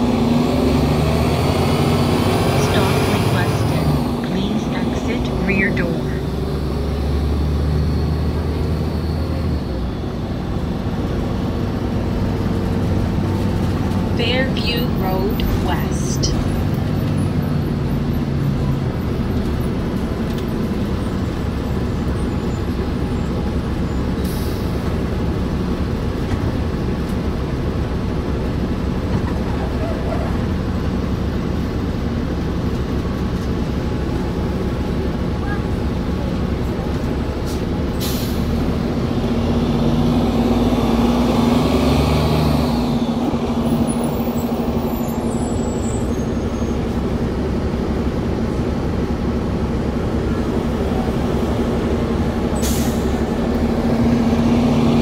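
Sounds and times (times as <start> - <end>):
bus engine and road noise: 0.0 - 55.0.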